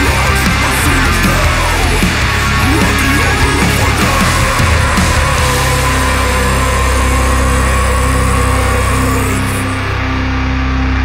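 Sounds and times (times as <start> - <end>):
drumming: 0.0 - 7.8
distorted guitars and bass chord: 0.0 - 11.0.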